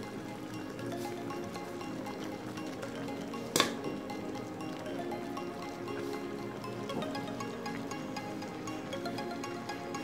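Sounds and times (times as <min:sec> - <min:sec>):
background music repeating notes: 0:00.0 - 0:10.0.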